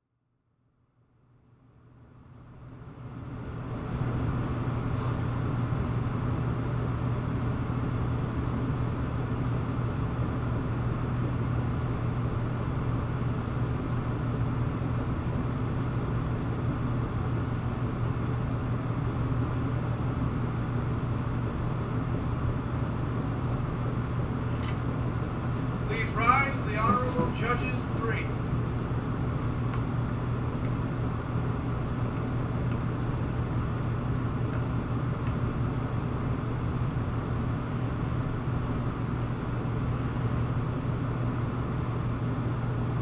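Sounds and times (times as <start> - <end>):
machine droning hum: 0.4 - 43.0.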